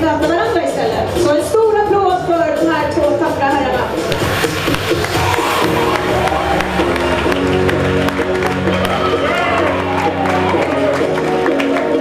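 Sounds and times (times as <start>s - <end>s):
music with a regular beat: 0.0s - 12.0s
sustained notes: 4.1s - 9.2s.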